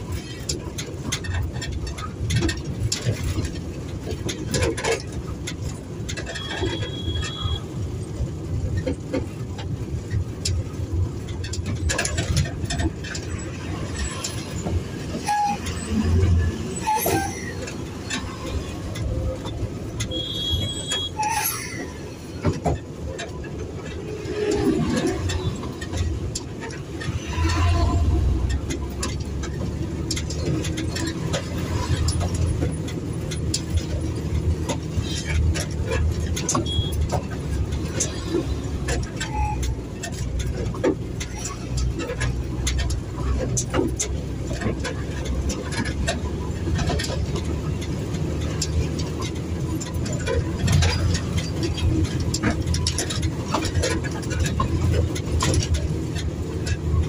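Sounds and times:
cab rattles and clicks: 0:00.0 - 0:57.0.

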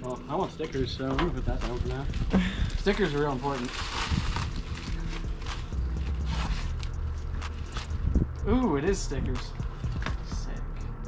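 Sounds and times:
plastic wrapping rustling: 0:00.3 - 0:08.1.

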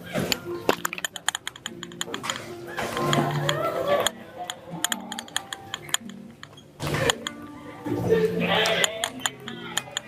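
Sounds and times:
murmuring voices: 0:00.0 - 0:10.0.

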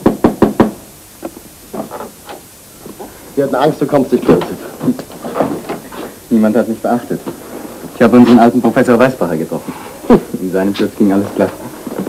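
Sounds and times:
knocking on wooden door: 0:00.0 - 0:00.8.

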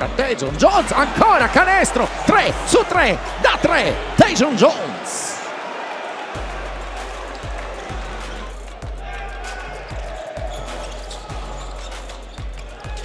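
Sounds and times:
arena music: 0:00.0 - 0:13.0
crowd hubbub: 0:00.0 - 0:13.0.

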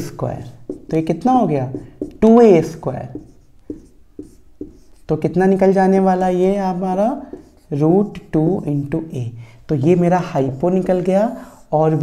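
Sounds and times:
marker scratching on whiteboard: 0:00.0 - 0:09.0, 0:09.9 - 0:12.0.

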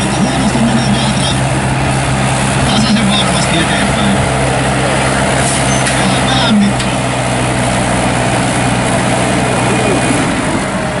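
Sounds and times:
tractor diesel engine under load: 0:00.0 - 0:11.0.

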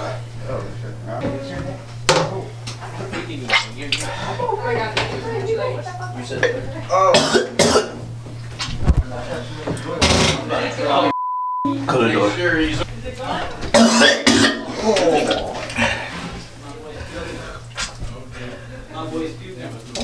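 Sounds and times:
steady low hum: 0:00.0 - 0:20.0
man coughing and gagging: 0:06.9 - 0:08.0, 0:13.8 - 0:14.7
censor bleep: 0:11.1 - 0:11.9.

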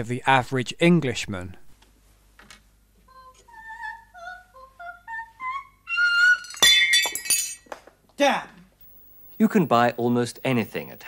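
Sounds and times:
glass pieces tinkling: 0:06.4 - 0:07.7
glass shattering: 0:06.4 - 0:07.7.

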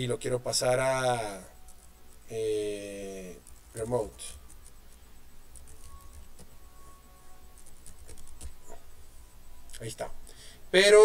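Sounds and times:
computer keyboard typing: 0:01.0 - 0:08.7.

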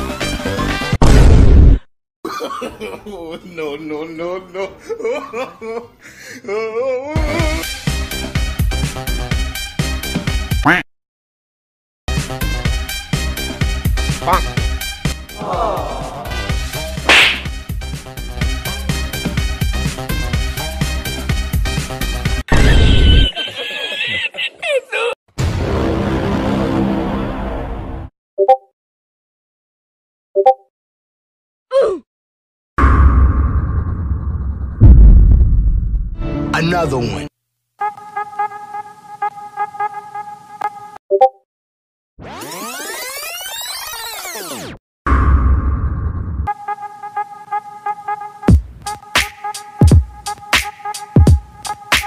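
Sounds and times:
swish sound effect: 0:17.1 - 0:17.5
background music with beat: 0:48.5 - 0:52.0.

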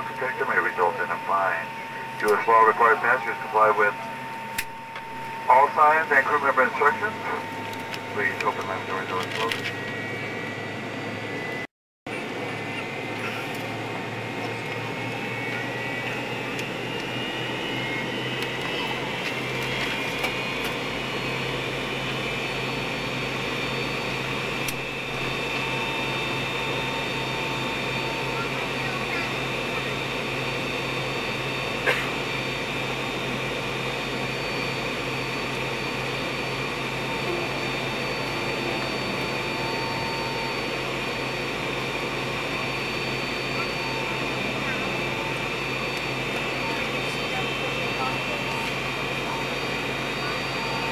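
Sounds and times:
jet engine whine: 0:00.0 - 0:50.9.

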